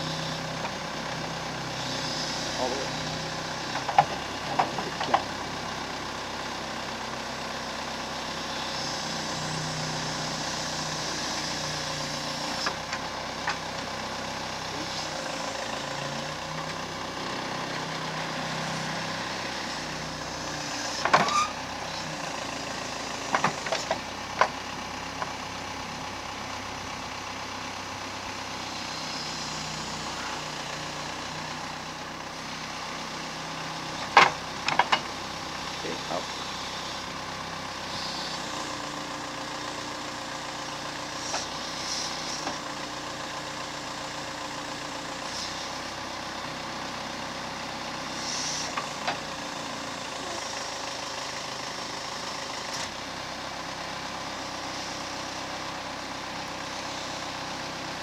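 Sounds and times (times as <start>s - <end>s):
backhoe engine running: 0.0s - 58.0s
metal clanks from bucket linkage: 34.0s - 35.1s.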